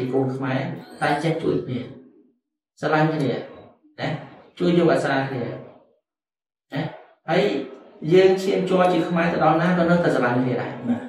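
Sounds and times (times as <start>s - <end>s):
man talking: 0.0s - 1.9s, 2.8s - 5.6s, 6.7s - 11.0s.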